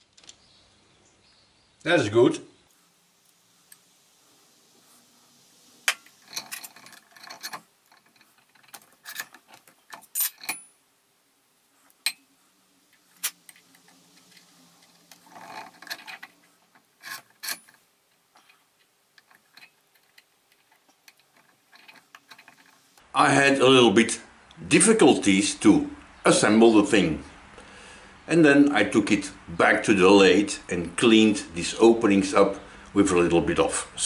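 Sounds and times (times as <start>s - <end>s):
small steel parts clinking: 5.8s - 10.8s, 12.0s - 12.3s, 12.9s - 23.0s.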